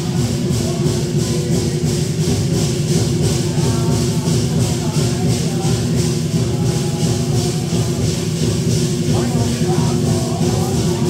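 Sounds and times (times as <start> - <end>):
cymbals clashing: 0.0 - 11.0
drum rumble: 0.0 - 11.0.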